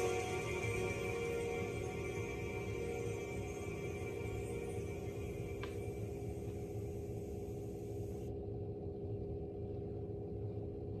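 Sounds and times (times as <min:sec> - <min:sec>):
sustained tones: 0:00.0 - 0:08.2
low steady hum: 0:00.0 - 0:11.0.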